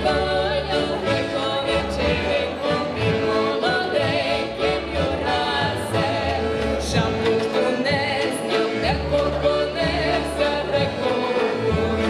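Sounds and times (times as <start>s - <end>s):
piano accordion: 0.0s - 12.0s
violin: 0.0s - 12.0s
women singing in harmony: 0.0s - 12.0s.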